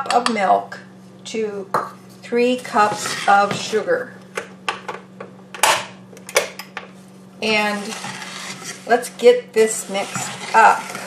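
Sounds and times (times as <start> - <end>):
wooden spoon scraping saucepan: 2.4 - 4.0, 7.4 - 11.0.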